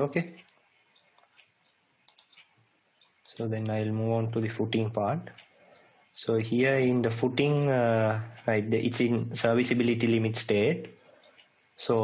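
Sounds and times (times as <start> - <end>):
faint short clicks: 1.2 - 2.5.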